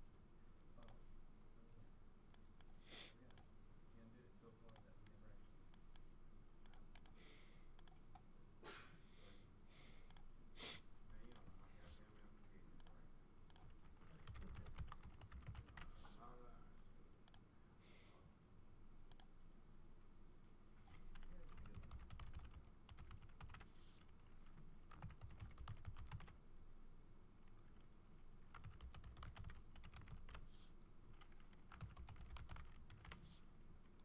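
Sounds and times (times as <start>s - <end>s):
faint typing on a keyboard: 0.6s - 1.2s, 2.3s - 8.4s, 10.0s - 10.4s, 11.0s - 16.6s, 17.2s - 17.5s, 19.0s - 19.4s, 20.7s - 26.4s, 27.4s - 34.0s.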